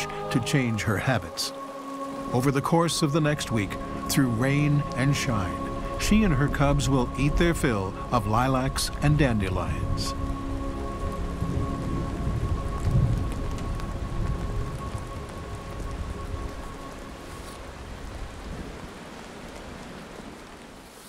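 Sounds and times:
steady rain falling: 0:00.0 - 0:21.0
low rumble of thunder: 0:11.4 - 0:16.6.

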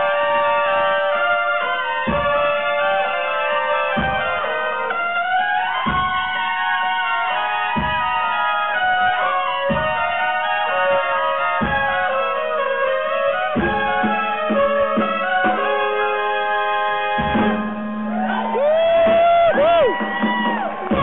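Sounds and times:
trumpets playing held high notes: 0:00.0 - 0:21.0.

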